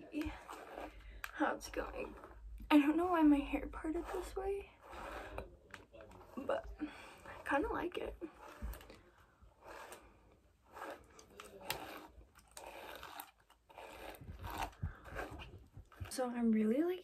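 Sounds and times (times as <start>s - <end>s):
hairbrush through wet hair: 0.0s - 8.9s, 9.6s - 16.3s.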